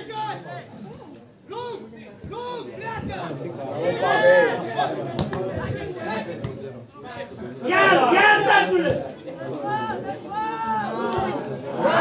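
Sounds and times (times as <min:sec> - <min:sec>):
spectators talking and calling out: 0:00.0 - 0:12.0
loud shout: 0:07.6 - 0:09.0.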